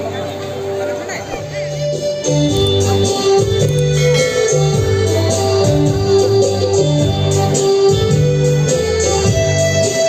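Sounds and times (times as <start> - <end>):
electronic keyboard organ chords: 0.0 - 10.0.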